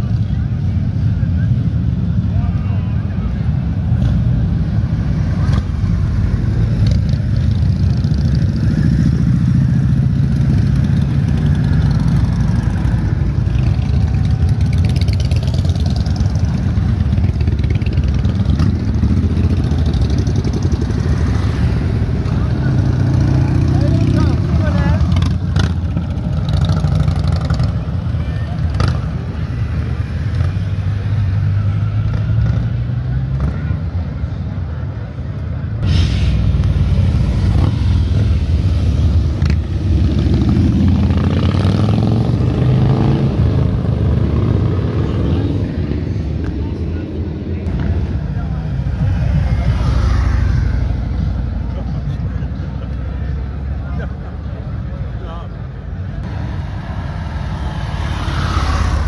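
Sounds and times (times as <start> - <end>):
motorcycles riding past: 0.0 - 35.1, 36.6 - 59.0.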